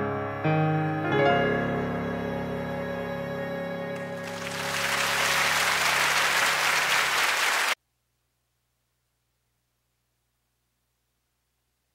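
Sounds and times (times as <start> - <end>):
audience applauding: 4.0 - 7.8.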